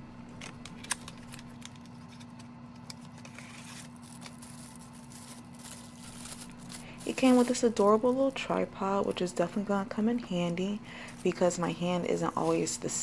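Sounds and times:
steady low hum: 0.0s - 13.0s
plastic crinkling: 0.3s - 12.8s.

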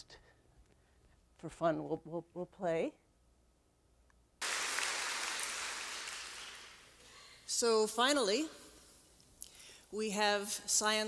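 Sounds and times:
audience applause over loudspeakers: 4.4s - 7.0s.

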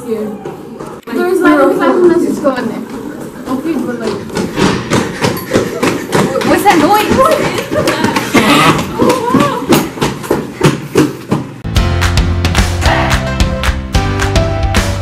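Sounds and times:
girls laughing: 5.1s - 9.7s
girls talking excitedly: 6.3s - 9.8s
music: 11.6s - 15.0s.

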